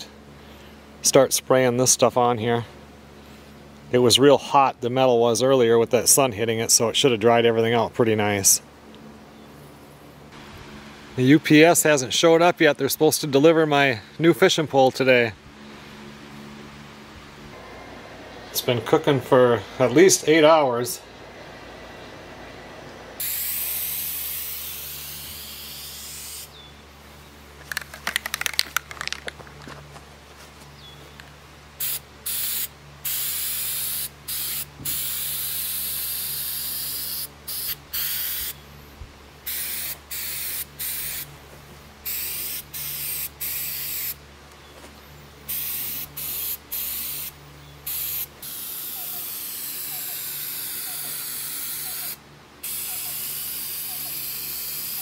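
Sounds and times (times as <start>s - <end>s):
aerosol spray can hissing: 23.2s - 26.5s, 31.8s - 38.6s, 39.5s - 41.3s, 42.1s - 44.2s, 45.5s - 47.3s, 47.9s - 55.0s
spray can rattle: 27.6s - 29.8s, 47.9s - 55.0s.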